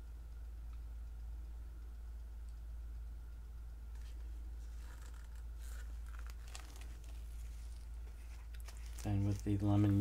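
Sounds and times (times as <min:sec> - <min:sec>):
steady low hum: 0:00.0 - 0:10.0
plastic cups crinkling: 0:05.6 - 0:10.0.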